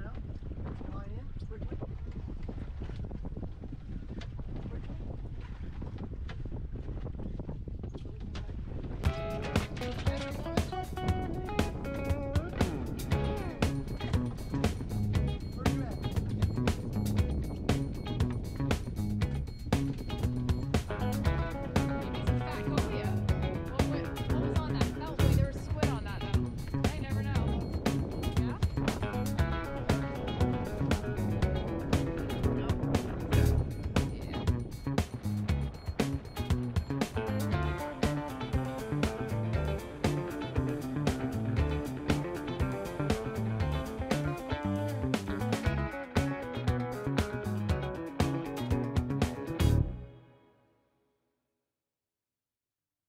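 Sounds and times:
wind buffeting microphone: 0:00.0 - 0:49.9
low rumble aboard boat: 0:00.0 - 0:50.0
music with steady beat: 0:09.1 - 0:49.9.

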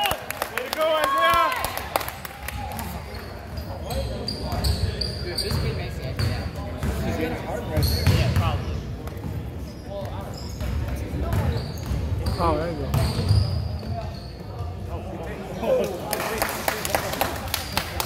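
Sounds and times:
voices of players and spectators: 0:00.0 - 0:18.0.

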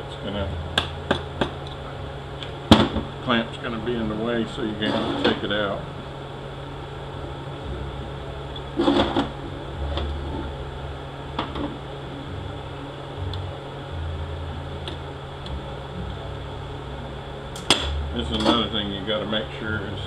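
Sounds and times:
low workshop hum: 0:00.0 - 0:20.0.

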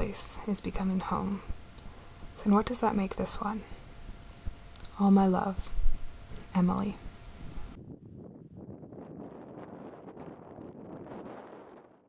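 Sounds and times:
wind buffeting microphone: 0:05.2 - 0:12.0.

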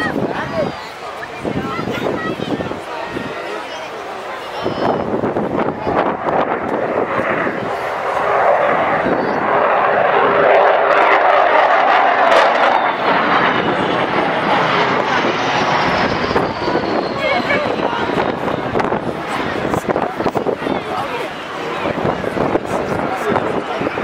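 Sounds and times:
jet aircraft flying past: 0:00.0 - 0:24.0.

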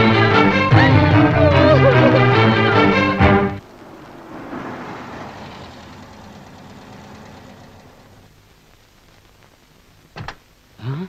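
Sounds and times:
car engine running: 0:01.0 - 0:08.3.

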